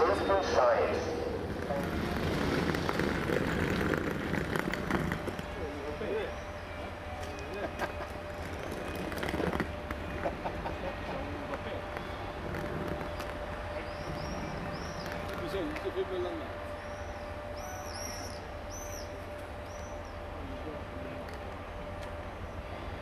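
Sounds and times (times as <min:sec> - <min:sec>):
indistinct voices: 0:00.0 - 0:02.5
low rumble: 0:00.0 - 0:06.0
electric locomotive whine: 0:00.0 - 0:23.0.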